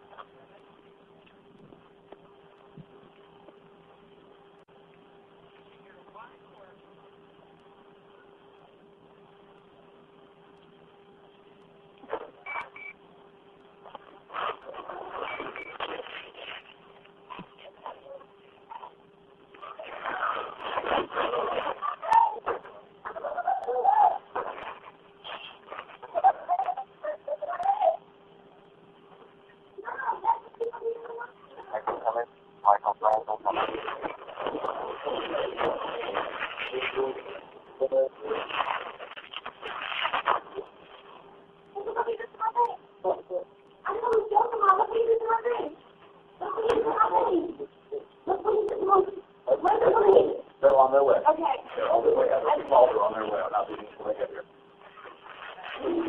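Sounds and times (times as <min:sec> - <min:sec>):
faint telephone line hum: 0:00.0 - 0:56.0.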